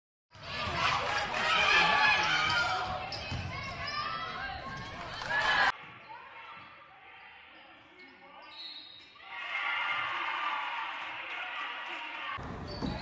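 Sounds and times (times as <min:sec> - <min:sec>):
voices in a hall: 0:00.3 - 0:13.0
basketball bouncing on court: 0:02.2 - 0:05.0, 0:12.4 - 0:13.0.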